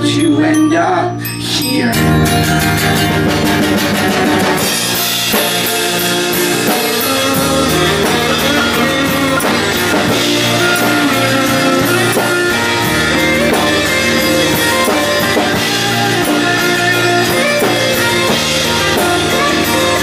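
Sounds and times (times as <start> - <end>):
strummed guitars: 1.4 - 20.0
drums with steady beat: 1.9 - 20.0.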